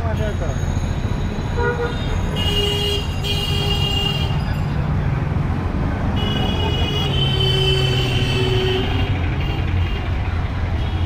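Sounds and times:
low traffic rumble: 0.0 - 11.0
vehicle horns: 1.4 - 4.6, 6.1 - 11.0.

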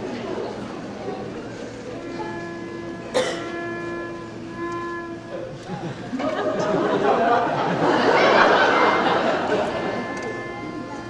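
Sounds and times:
faint room murmur: 0.0 - 11.0
held musical note: 1.6 - 11.0
higher tones: 1.8 - 11.0.

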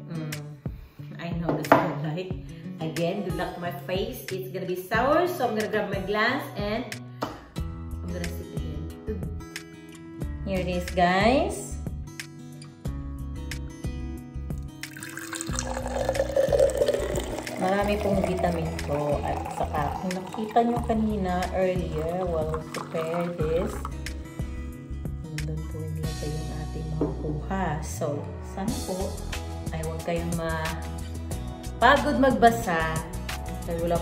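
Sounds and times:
background music with steady beat: 0.0 - 17.7, 23.8 - 34.0
juice pouring into a glass: 14.8 - 24.2.

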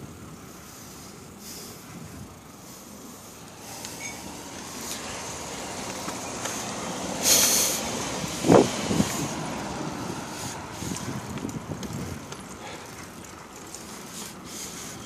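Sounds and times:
road traffic passing: 0.0 - 15.0
short sharp hiss: 7.2 - 7.9.

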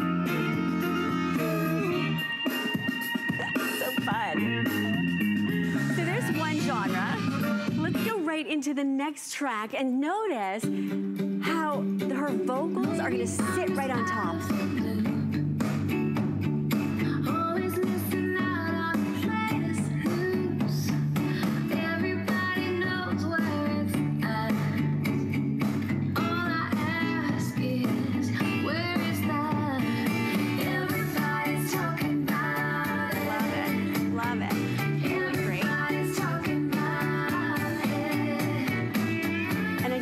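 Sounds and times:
steady bass line: 0.0 - 8.1, 12.8 - 40.0
woman singing: 3.2 - 15.3, 17.0 - 24.9, 26.2 - 40.0.

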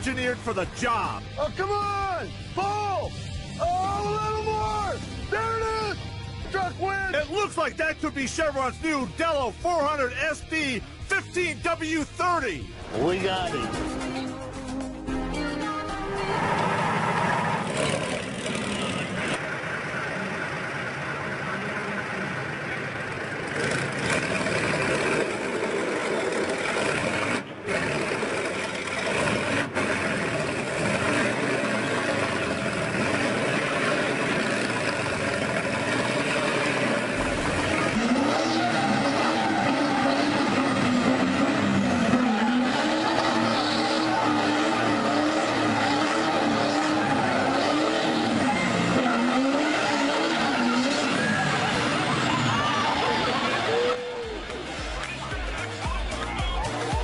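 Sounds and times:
tracked vehicle engine: 0.0 - 57.0
tractor engine labouring: 16.0 - 57.0
crowd voices: 31.7 - 57.0.

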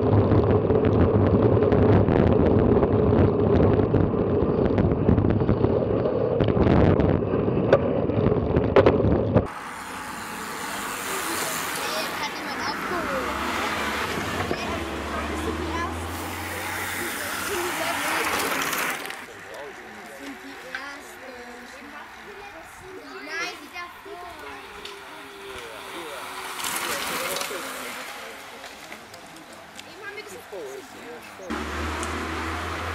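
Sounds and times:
wind rumbling on camera: 0.0 - 10.2
racing bicycles passing: 9.4 - 32.9
spectators talking: 9.5 - 31.6
distant voices: 9.5 - 32.9.

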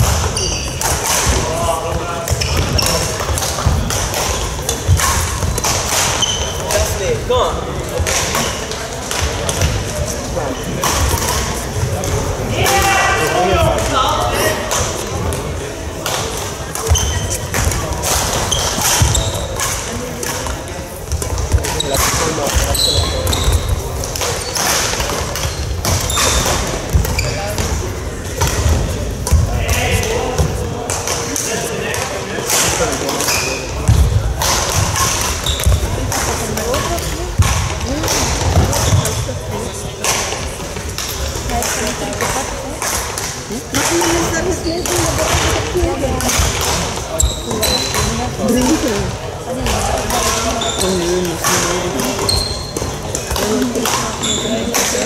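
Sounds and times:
echoing voices: 0.0 - 55.0.

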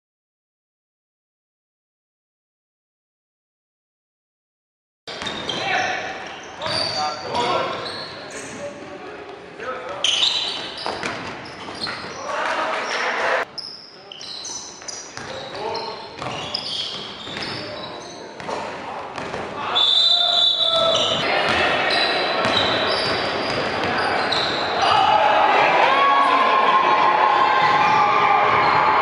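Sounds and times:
players calling out: 19.6 - 29.0.

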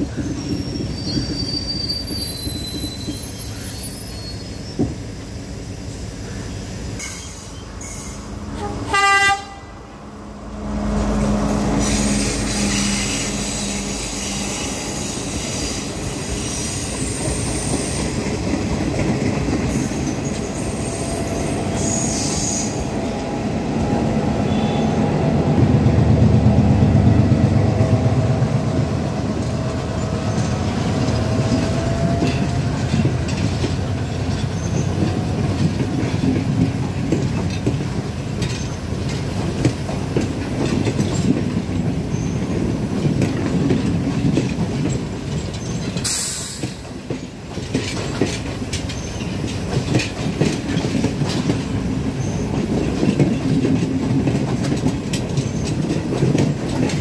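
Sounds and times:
faint wheel squeal: 0.0 - 4.9
diesel locomotive passing: 0.0 - 57.0
train wheels clattering over rail joints: 11.1 - 23.2, 29.2 - 57.0
sharp hiss: 46.0 - 46.8.

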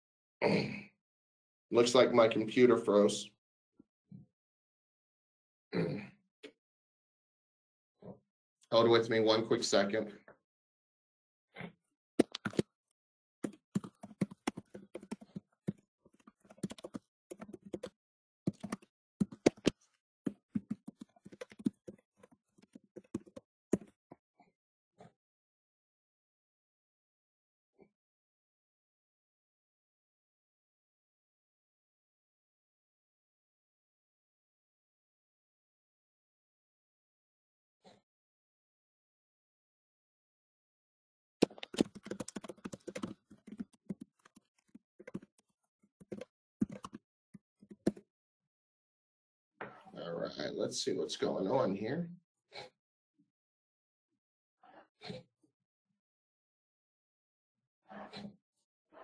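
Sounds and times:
typing on keyboard: 12.2 - 12.6, 13.4 - 17.9, 18.5 - 23.9, 41.4 - 47.0, 47.6 - 48.0
computer keyboard key clicks: 41.4 - 43.6.

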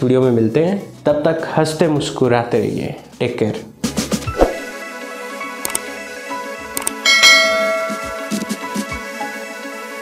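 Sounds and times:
background music: 0.0 - 10.0
bell notification chime: 7.1 - 8.6.

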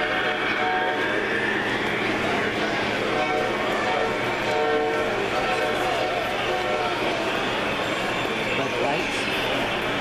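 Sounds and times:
model train horn blasts: 0.0 - 1.3, 3.1 - 7.0
crowd chatter: 0.0 - 10.0.

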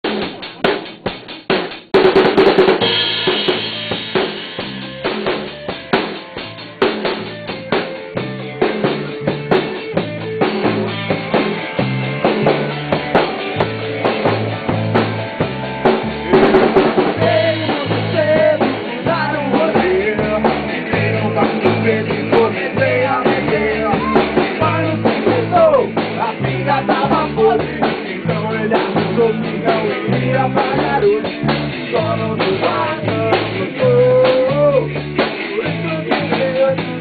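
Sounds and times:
band playing drums and guitar: 0.0 - 37.0
drum kit hits: 0.0 - 37.0.

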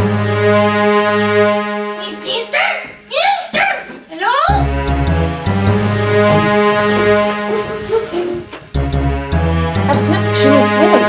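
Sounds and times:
held chord: 4.6 - 8.2.

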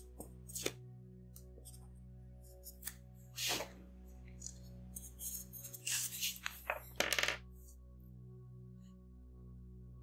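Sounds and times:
marker scratching on paper: 5.0 - 6.6
marker clattering on table: 6.1 - 7.4.

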